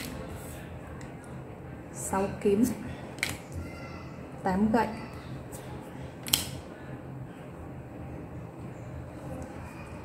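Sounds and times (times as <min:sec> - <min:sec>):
faint room hum: 0:00.0 - 0:10.0
card snapping on table: 0:06.2 - 0:06.6.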